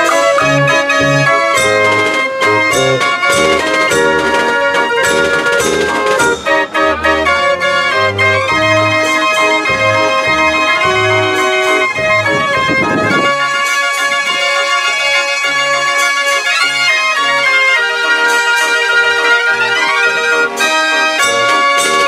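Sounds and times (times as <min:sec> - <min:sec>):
drum strikes: 0:00.0 - 0:07.1
street organ playing a tune: 0:00.0 - 0:22.0.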